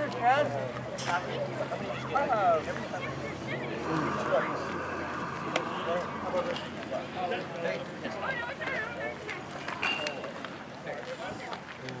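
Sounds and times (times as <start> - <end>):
group chatter: 0.0 - 12.0.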